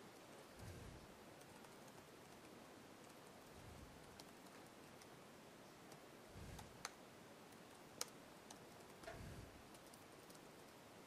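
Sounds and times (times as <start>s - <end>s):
computer keyboard keystrokes: 1.4s - 5.1s, 6.6s - 10.8s.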